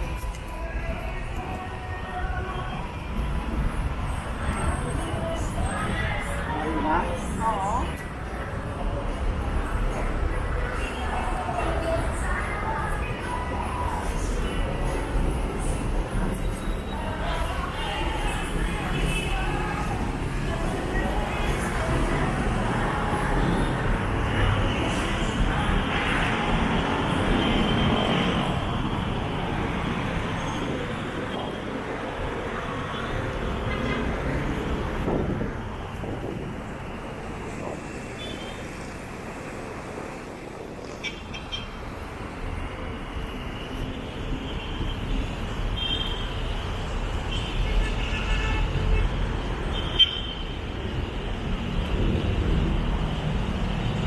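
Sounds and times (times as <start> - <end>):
road traffic rushing: 0.0 - 54.0.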